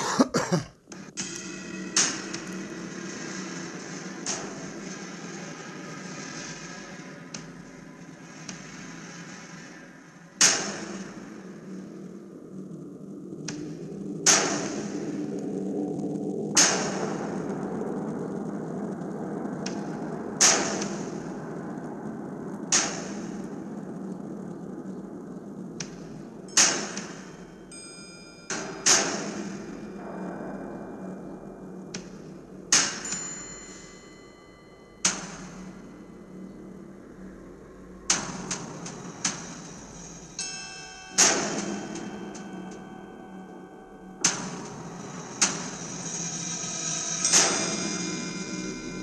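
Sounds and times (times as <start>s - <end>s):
steady low hum: 0.0s - 49.0s
sharp ringing impact hits: 26.0s - 49.0s.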